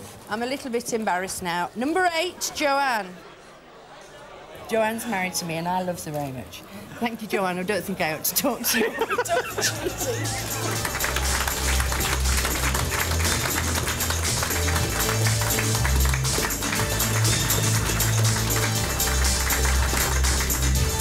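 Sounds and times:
upbeat music with bass line: 9.3s - 21.0s
audience clapping along: 9.9s - 21.0s.

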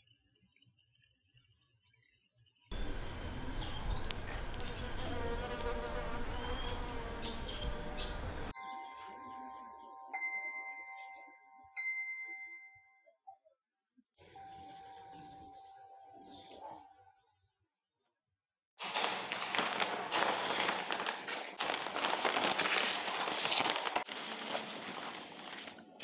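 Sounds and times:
steady outdoor noise: 2.7s - 8.6s.

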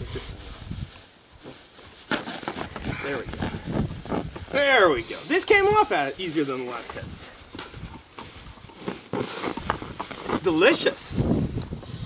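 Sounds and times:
plush toy rustling on grass: 0.0s - 12.0s.

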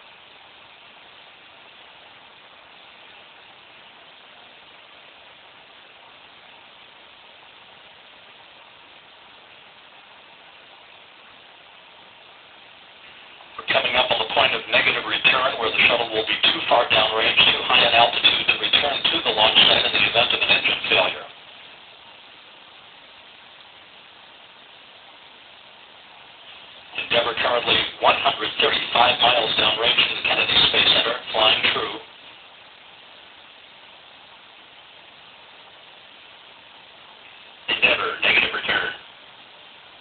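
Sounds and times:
broadcast audio hiss: 0.0s - 40.0s
speech over radio channel: 13.5s - 21.4s, 26.9s - 32.2s, 37.7s - 39.2s.

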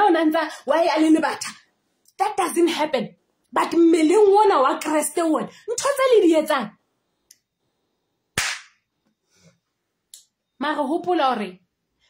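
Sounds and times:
hands smacking: 8.4s - 8.8s.

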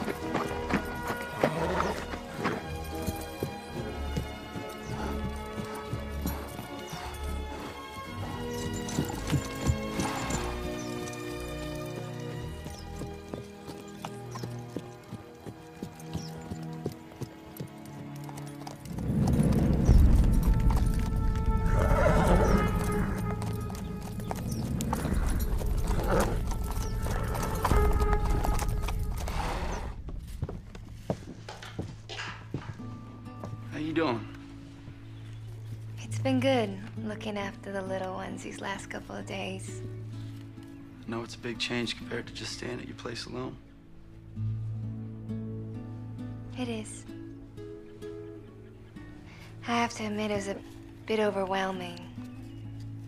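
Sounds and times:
horse hooves clip-clopping: 0.0s - 41.0s, 47.1s - 53.0s
film score music: 0.0s - 53.0s
horse whinnying: 1.0s - 2.6s, 21.6s - 30.0s.

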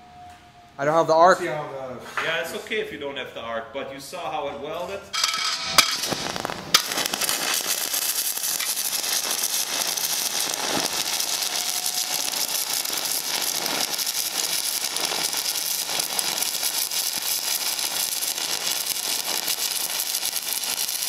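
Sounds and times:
welding arc crackling: 5.1s - 21.0s.

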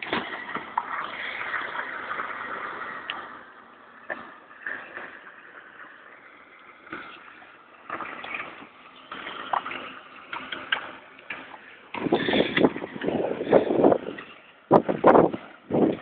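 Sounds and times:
wind buffeting microphone: 11.9s - 16.0s.

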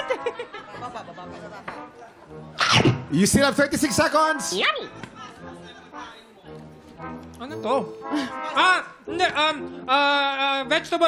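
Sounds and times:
low studio chatter: 0.2s - 10.2s.

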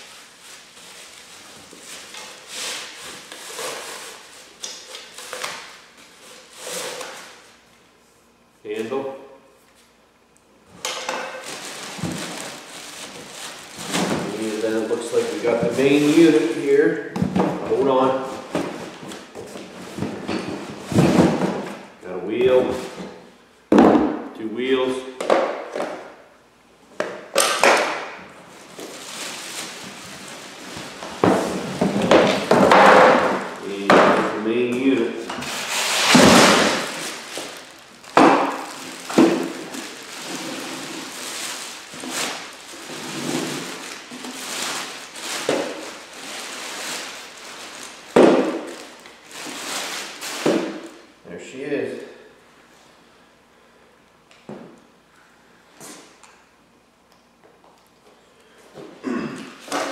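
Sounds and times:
plastic packaging crinkling: 11.1s - 16.7s, 28.6s - 33.9s, 34.9s - 51.0s.

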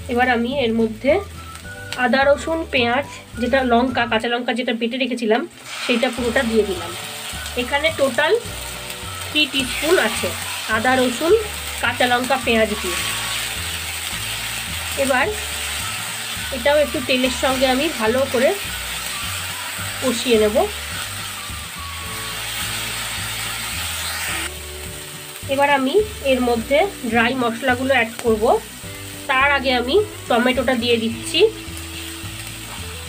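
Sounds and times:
paste sizzling in oil: 0.0s - 4.4s, 5.5s - 33.0s.

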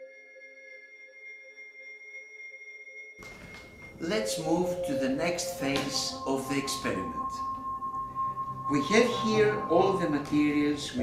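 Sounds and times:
sustained electronic tones: 0.0s - 11.0s.

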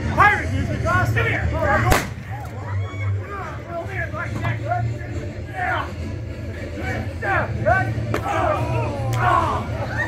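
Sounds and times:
people talking: 0.0s - 9.7s
revolver firing blank: 1.9s - 2.4s.

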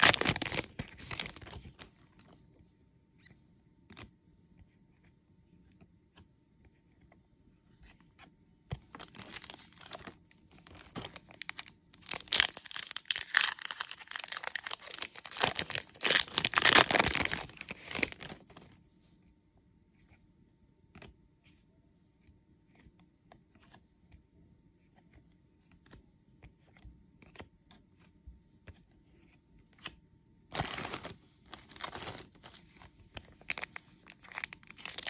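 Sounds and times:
foil wrapper tearing and crinkling: 0.0s - 1.9s, 9.0s - 18.7s, 30.5s - 32.6s, 33.2s - 35.0s.

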